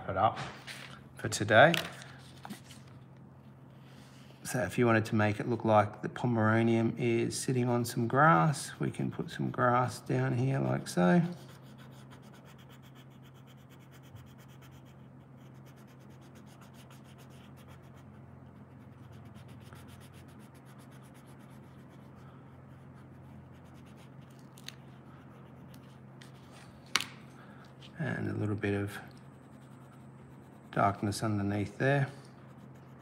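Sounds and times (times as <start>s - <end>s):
coloured pencil rubbing on paper: 9.8s - 26.6s, 28.0s - 33.0s.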